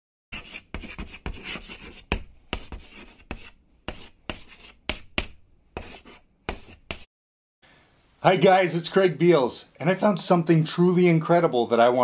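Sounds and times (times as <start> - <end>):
chalk writing on chalkboard: 0.3 - 7.1.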